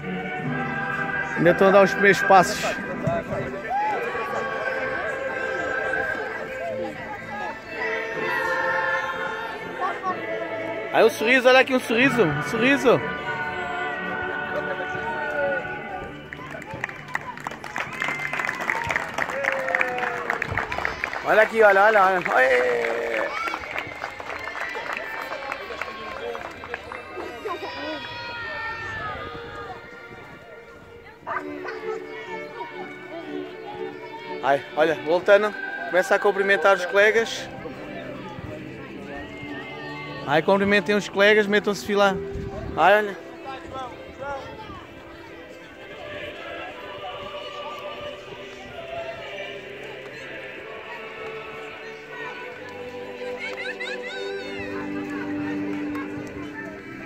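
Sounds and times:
children chattering: 0.0s - 17.8s, 23.0s - 41.2s, 42.1s - 57.0s.

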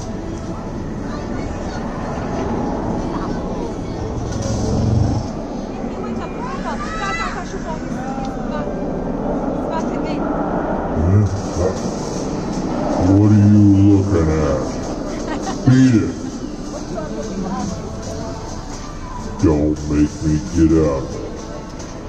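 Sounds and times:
background hubbub: 0.0s - 22.0s
deep wordless vocal sounds: 4.0s - 5.6s, 10.8s - 16.4s.

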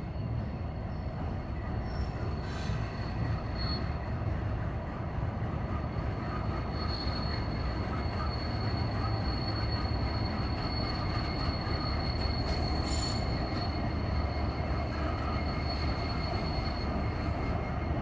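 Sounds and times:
freight train rumble: 0.0s - 18.0s
high wheel squeal: 0.1s - 4.2s, 5.7s - 18.0s.

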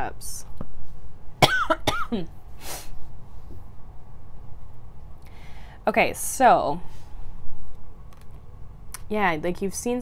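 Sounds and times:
woman coughing: 1.4s - 2.3s.

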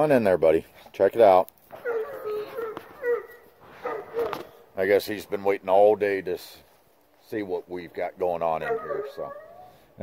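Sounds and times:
dog whining: 1.7s - 4.5s, 8.6s - 9.9s.

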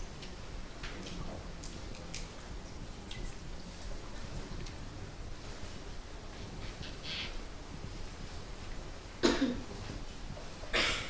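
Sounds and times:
quiet room hum: 0.0s - 11.0s
short cough: 9.2s - 9.6s, 10.7s - 11.0s.

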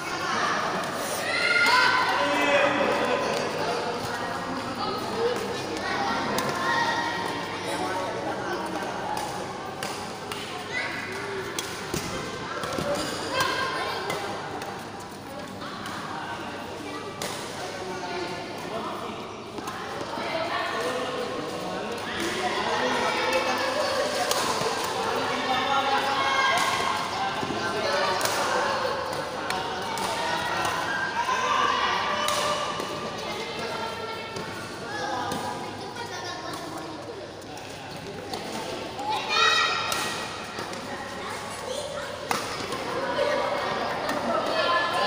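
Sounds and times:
chatter of many voices: 0.0s - 45.0s
racket hitting shuttlecock: 39.7s - 40.8s, 42.2s - 43.0s.

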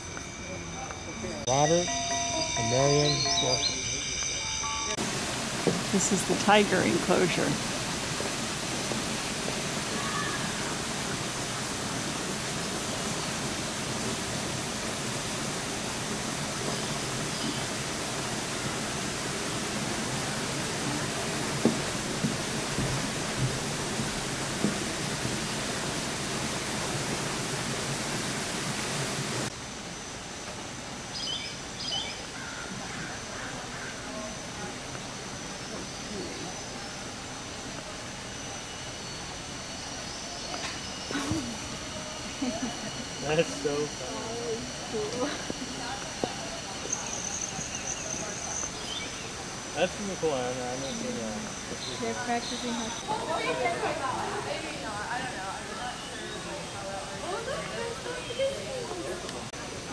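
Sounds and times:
indistinct voices: 0.0s - 7.7s, 33.0s - 59.9s
steady background hiss: 0.0s - 59.9s.

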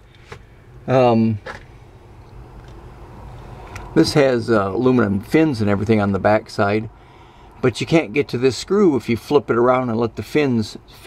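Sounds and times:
roof vent fan whirring: 0.0s - 11.0s.

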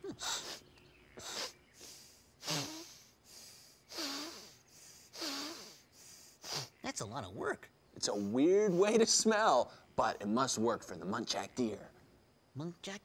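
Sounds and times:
person sniffing and snorting: 0.1s - 0.6s, 1.2s - 6.8s.

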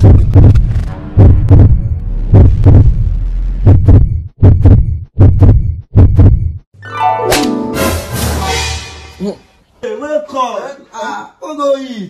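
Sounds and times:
heartbeat thumps: 0.0s - 6.7s.

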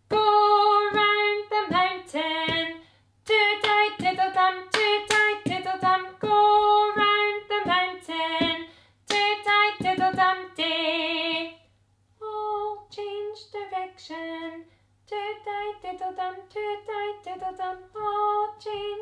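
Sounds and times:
woman singing unaccompanied: 0.0s - 19.0s.

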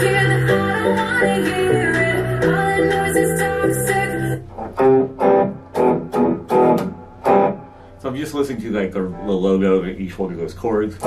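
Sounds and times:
electric guitar chords strummed: 0.0s - 8.0s
recorded song playing: 0.0s - 10.0s.

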